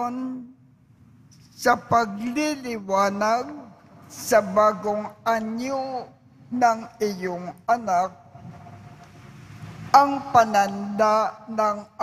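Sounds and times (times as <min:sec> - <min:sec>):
background room noise: 0:00.0 - 0:12.0
amplified speech: 0:01.6 - 0:08.4, 0:09.9 - 0:12.0.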